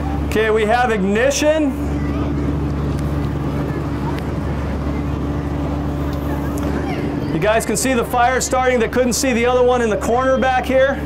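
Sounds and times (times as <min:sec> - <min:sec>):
motor running steadily: 0:00.0 - 0:11.0.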